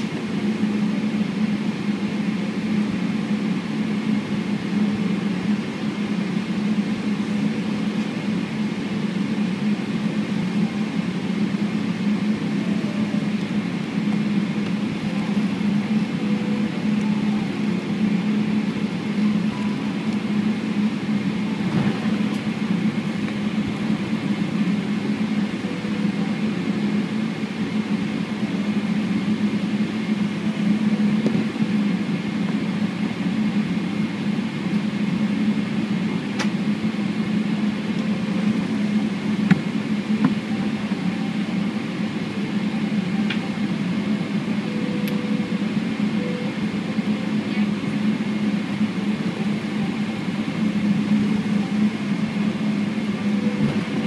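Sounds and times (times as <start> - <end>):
airplane cabin hum: 0.0 - 54.0
faint high engine whine: 0.0 - 54.0.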